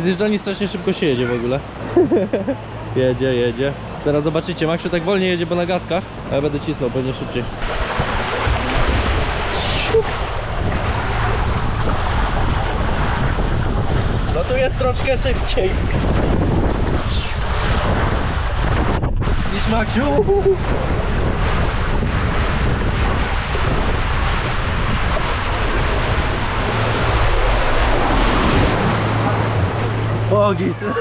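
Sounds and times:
water and air rushing on microphone: 0.0 - 31.0
plunge into pool low rumble: 6.8 - 31.0.

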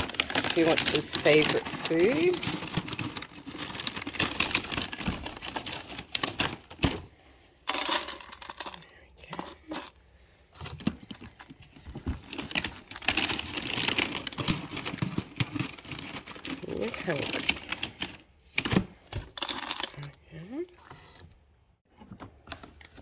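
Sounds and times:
plastic packet crinkling: 0.0 - 6.9, 11.0 - 18.2.

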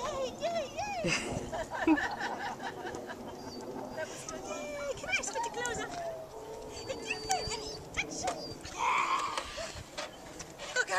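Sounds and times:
dog yipping and whining: 5.4 - 10.2.

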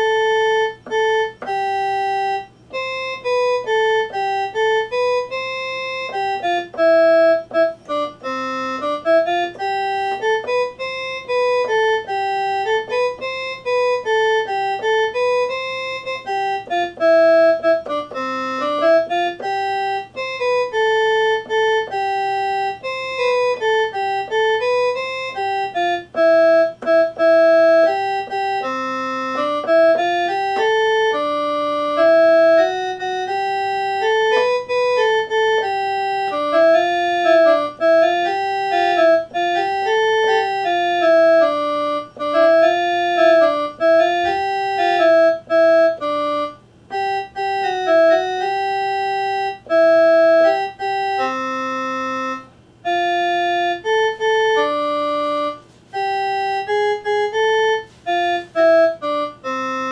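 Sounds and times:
electronic keyboard organ melody: 0.0 - 59.9.

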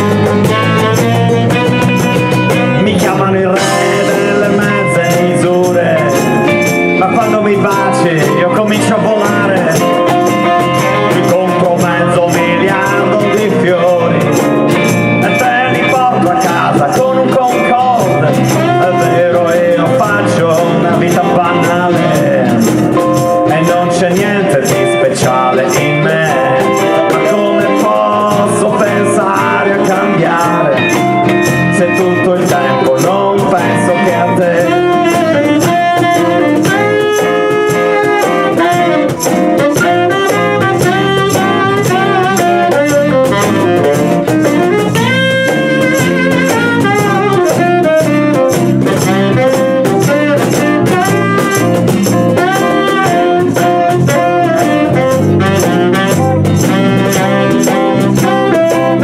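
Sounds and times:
acoustic guitars: 0.0 - 59.0
bass: 0.0 - 59.0
saxophone: 0.0 - 59.0
shaker rhythm: 0.0 - 59.0.

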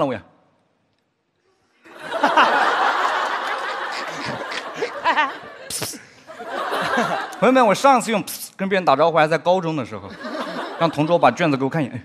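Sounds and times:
studio audience laughing: 1.8 - 7.8, 10.1 - 11.6.

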